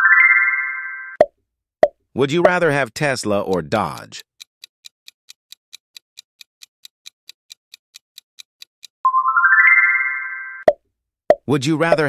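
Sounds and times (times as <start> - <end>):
rising bell-like chime run: 0.0 - 1.2, 9.1 - 10.7.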